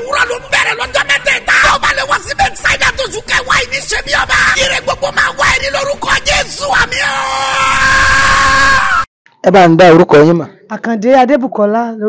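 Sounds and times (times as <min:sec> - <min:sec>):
man talking animatedly: 0:00.0 - 0:07.8
people shouting: 0:00.0 - 0:09.1.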